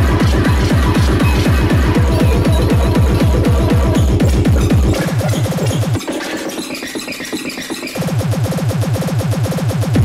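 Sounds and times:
fast pounding kick drum: 0.0s - 6.1s, 8.0s - 10.0s
harsh distorted electronic noise: 0.0s - 10.0s.

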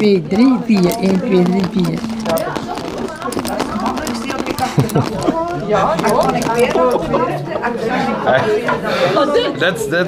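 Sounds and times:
wooden bobbins clicking: 0.0s - 7.2s.

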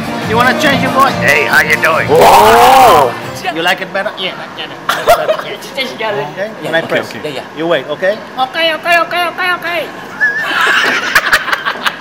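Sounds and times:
crowd laughing: 10.1s - 12.0s.

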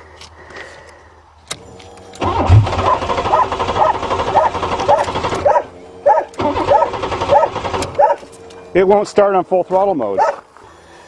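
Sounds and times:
starter motor cranking engine: 1.5s - 8.5s.

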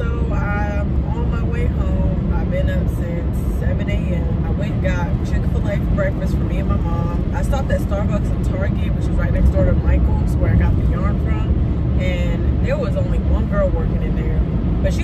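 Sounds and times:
road and engine rumble in car: 0.0s - 15.0s
woman talking: 0.0s - 15.0s.

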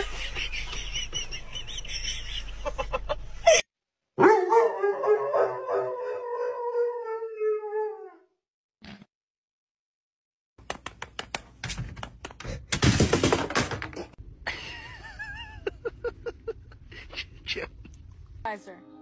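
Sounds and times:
dog howling: 4.2s - 8.4s.

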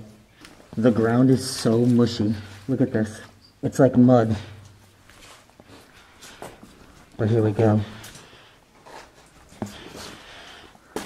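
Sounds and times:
breathing through respirator mask: 9.6s - 11.0s.

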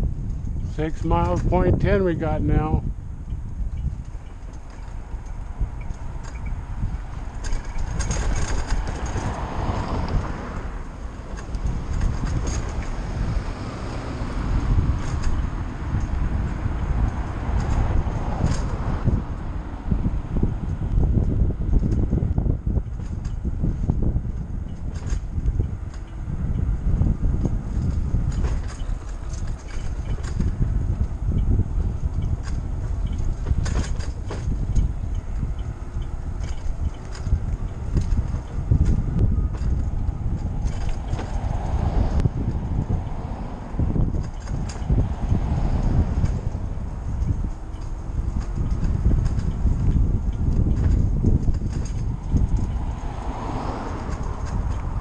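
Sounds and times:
road noise: 0.0s - 55.0s
wind buffeting microphone: 0.0s - 55.0s
clicks and rattles: 7.3s - 9.4s.

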